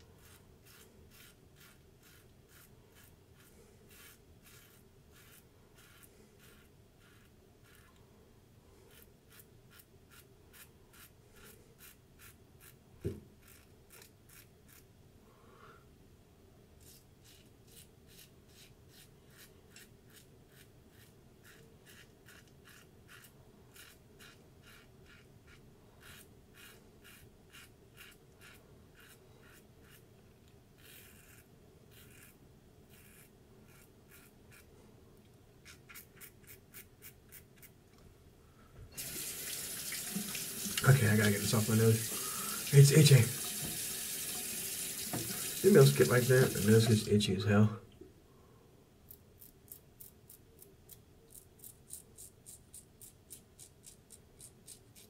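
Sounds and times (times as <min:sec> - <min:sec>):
razor scraping stubble: 0:00.0 - 0:08.0, 0:08.9 - 0:14.9, 0:16.8 - 0:30.1, 0:30.8 - 0:34.7, 0:35.6 - 0:37.7, 0:49.4 - 0:55.0
faucet running into sink: 0:39.0 - 0:47.1.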